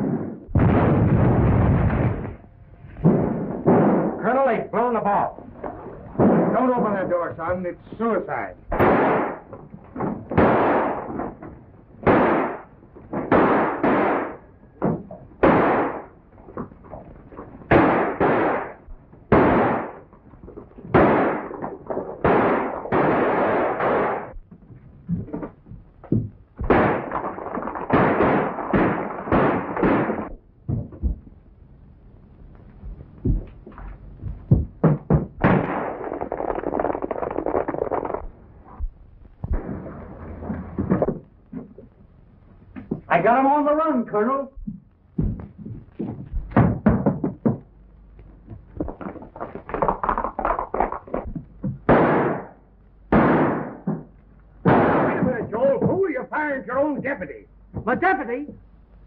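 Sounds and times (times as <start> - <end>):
gunshots with echo: 0.0 - 5.3, 6.2 - 16.2, 17.7 - 20.1, 20.9 - 24.4, 26.6 - 30.4, 34.5 - 38.3, 51.8 - 56.3.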